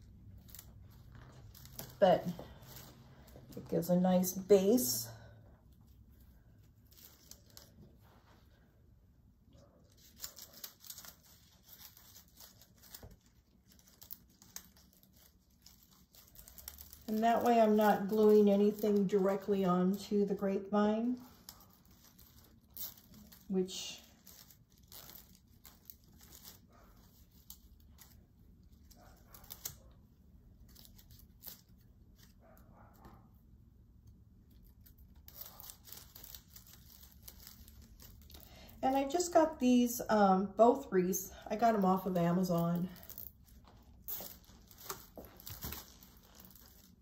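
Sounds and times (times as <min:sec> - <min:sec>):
netting crinkling and rustling: 0:00.0 - 0:04.2, 0:05.9 - 0:08.6, 0:09.9 - 0:30.0, 0:34.5 - 0:39.2, 0:43.0 - 0:47.0.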